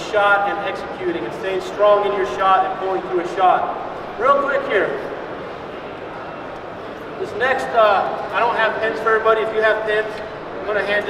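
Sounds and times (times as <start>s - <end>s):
large hall background noise: 0.0s - 11.0s.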